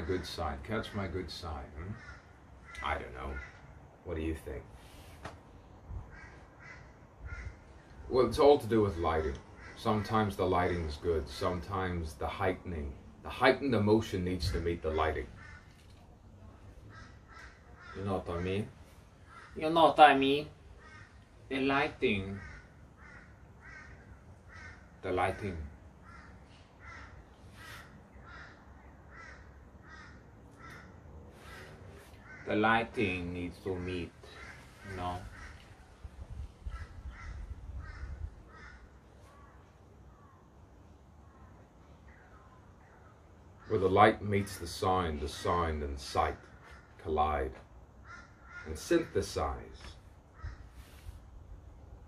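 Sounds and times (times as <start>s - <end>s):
faint bird calling: 0.0s - 3.9s, 4.8s - 8.2s, 9.2s - 10.4s, 14.9s - 44.0s, 48.0s - 51.8s.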